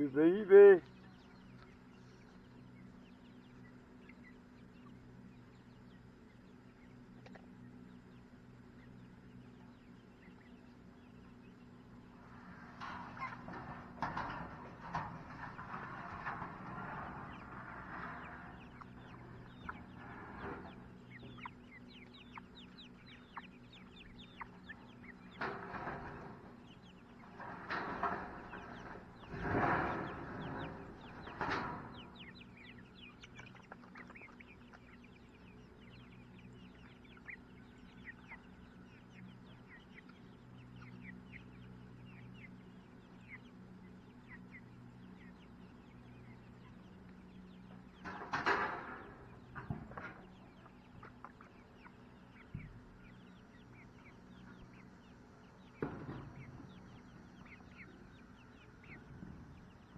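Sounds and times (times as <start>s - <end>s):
chickens and guinea fowl clucking: 0.0s - 59.9s.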